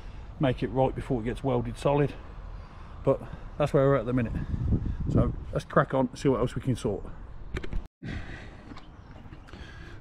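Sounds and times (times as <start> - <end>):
low outdoor background noise: 0.0 - 10.0.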